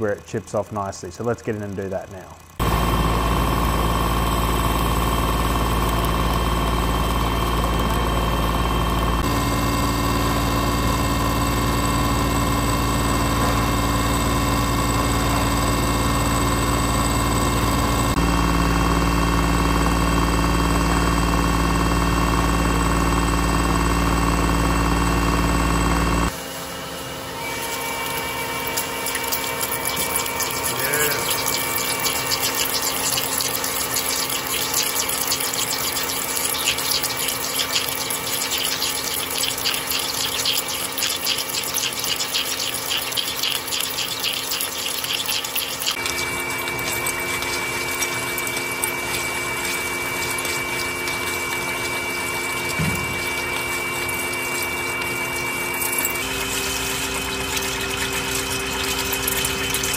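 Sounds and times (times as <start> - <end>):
coolant spraying: 0.0 - 26.3, 27.6 - 59.9
drill boring into steel: 27.0 - 59.9
steel chips crackling: 28.1 - 51.9.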